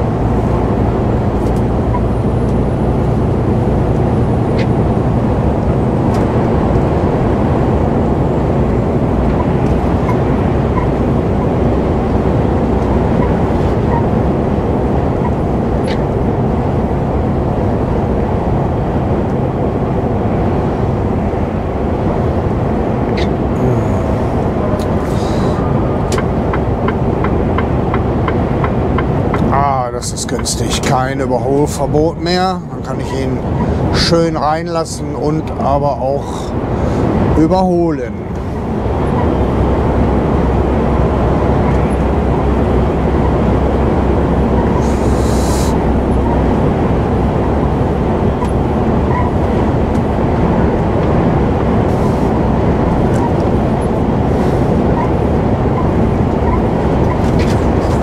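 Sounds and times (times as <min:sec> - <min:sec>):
truck engine drone: 0:00.0 - 0:58.0.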